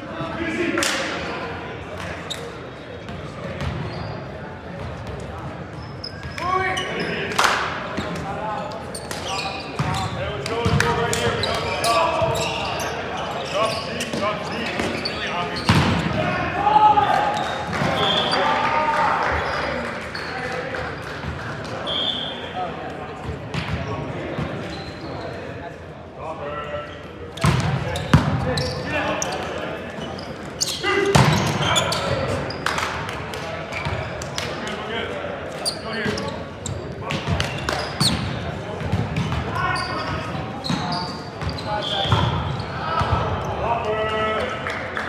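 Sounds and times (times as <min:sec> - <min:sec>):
players shouting: 0:09.3 - 0:19.9.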